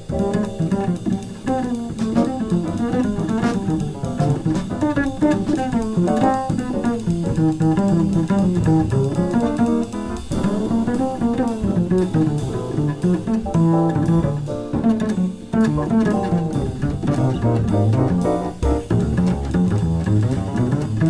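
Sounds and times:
jazz piano trio playing: 0.0s - 21.0s
pizzicato double bass: 0.0s - 21.0s.

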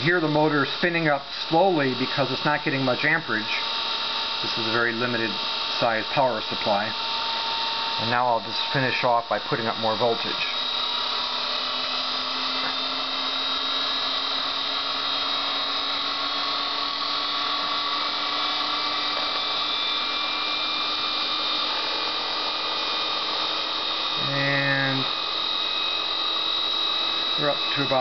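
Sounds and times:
electric motor whine rising: 0.0s - 28.0s.

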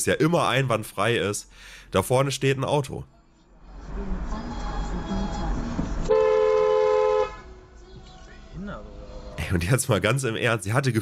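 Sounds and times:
car driving noise: 2.4s - 9.8s
two-tone car horn: 6.0s - 7.6s.

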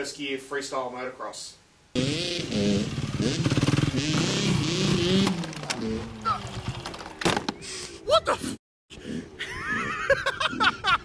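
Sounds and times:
dirt bike engine revving: 2.0s - 7.2s.

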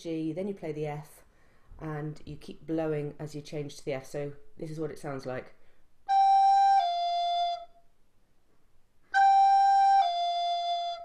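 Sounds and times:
recorder playing slurred notes: 6.1s - 7.7s, 9.1s - 11.0s.

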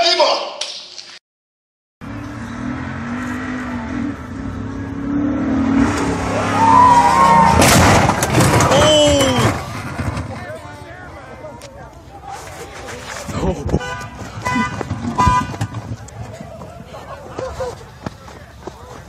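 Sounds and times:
people shouting: 6.3s - 7.6s, 8.7s - 9.5s
truck landing crash: 6.6s - 10.6s.

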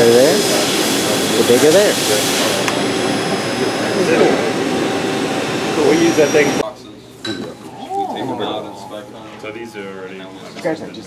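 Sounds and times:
faint high machine whines: 0.0s - 7.1s, 7.8s - 11.0s.

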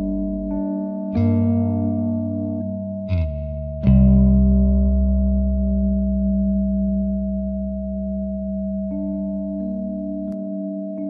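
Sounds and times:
low drone: 0.0s - 11.0s
soft music notes: 0.0s - 11.0s
sustained pure tone: 0.0s - 11.0s.

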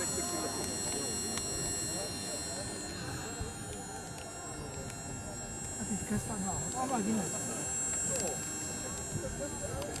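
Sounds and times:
faint high-pitched whine: 0.0s - 10.0s
people talking: 0.0s - 10.0s.

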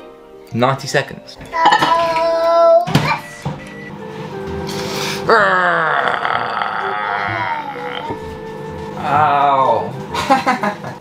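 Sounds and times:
man groaning: 5.3s - 8.2s.

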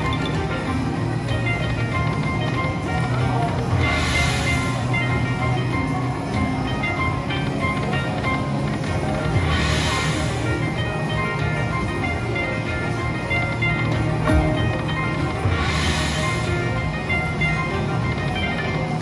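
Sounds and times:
slot machine bonus music: 0.0s - 19.0s
short chiming notes: 14.1s - 16.6s.

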